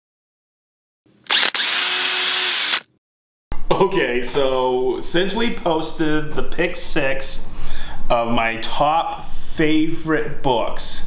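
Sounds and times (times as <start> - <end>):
power drill motor whining: 1.2 - 2.9.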